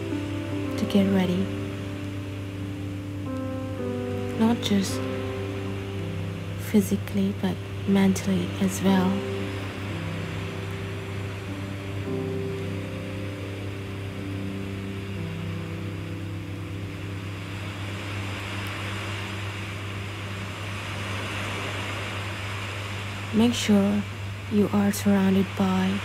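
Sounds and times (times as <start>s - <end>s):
low hum and hiss: 0.0s - 26.0s
meditation music drone: 0.0s - 26.0s.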